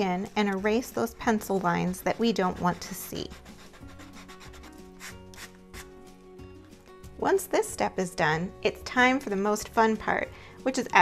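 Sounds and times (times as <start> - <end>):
eraser rubbing on canvas: 2.1 - 6.0.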